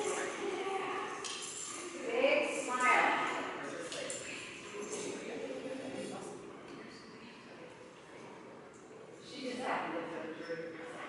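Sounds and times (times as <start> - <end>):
voices echoing in a large hall: 0.0 - 11.0
faint light clinks: 1.1 - 2.0.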